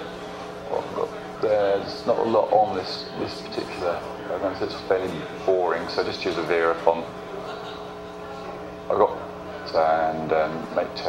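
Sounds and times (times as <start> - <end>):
steady machine hum: 0.0 - 11.0.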